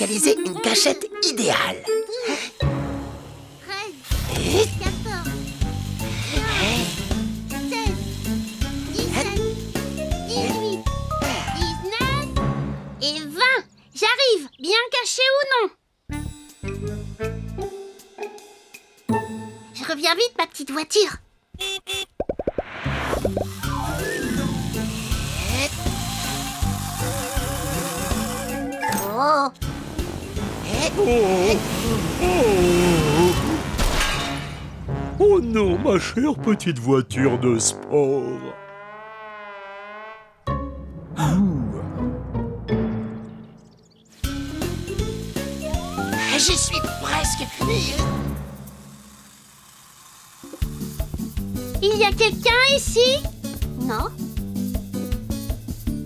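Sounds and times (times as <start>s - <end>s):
light children's music: 0.0s - 3.8s, 4.4s - 13.9s, 16.1s - 20.0s, 23.3s - 30.4s, 40.5s - 48.4s, 50.5s - 56.0s
cartoon popping sound effects: 21.6s - 23.8s
repeated low musical notes: 34.8s - 38.6s, 40.4s - 43.9s.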